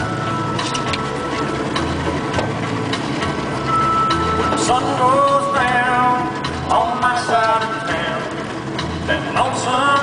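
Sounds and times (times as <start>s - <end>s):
boat engine running: 0.0s - 10.0s
wind and sea noise: 0.0s - 10.0s.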